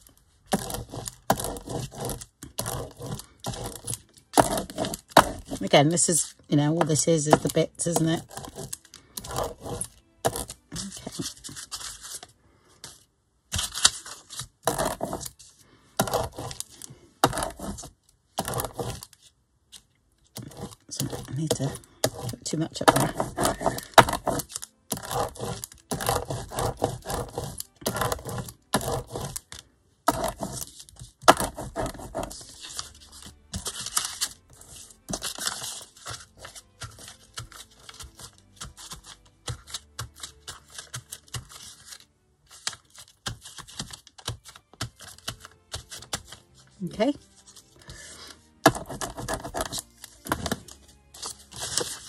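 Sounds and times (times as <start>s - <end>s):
paper rustling and crinkling: 0.0s - 52.0s.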